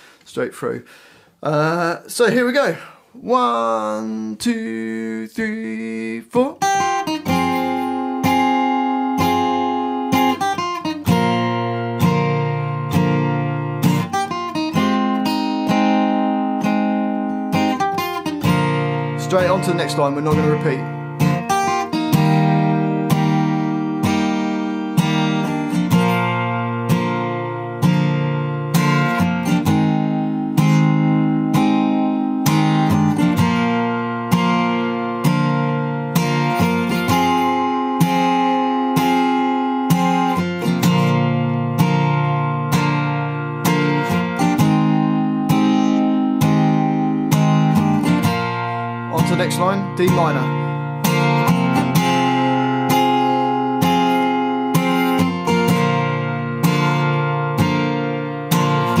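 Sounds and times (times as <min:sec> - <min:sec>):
acoustic guitar strumming: 0:01.7 - 0:59.0.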